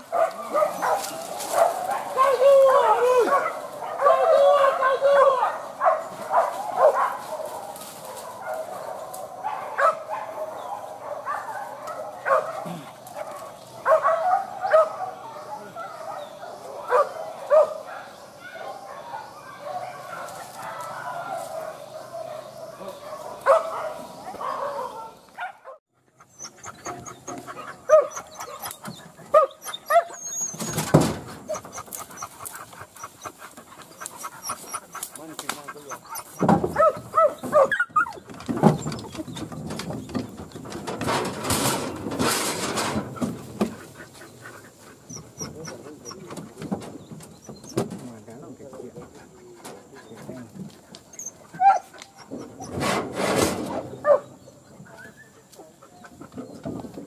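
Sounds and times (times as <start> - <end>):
hunting dogs barking and whining: 0.0 - 57.0.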